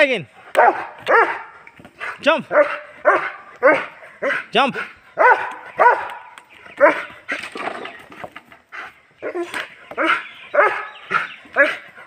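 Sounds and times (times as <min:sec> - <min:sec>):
dog barking: 0:00.5 - 0:01.6, 0:02.4 - 0:04.5, 0:05.2 - 0:07.1, 0:09.2 - 0:11.8.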